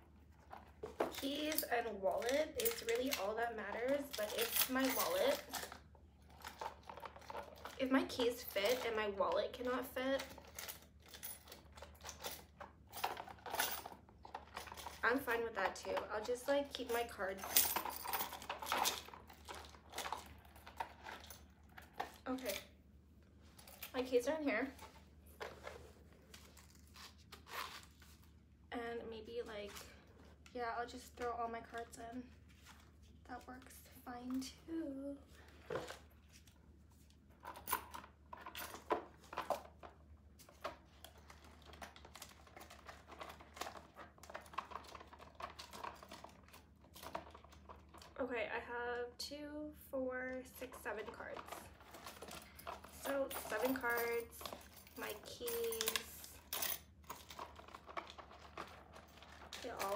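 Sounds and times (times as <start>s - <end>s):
keys and chain jingling: 51.9s - 57.7s.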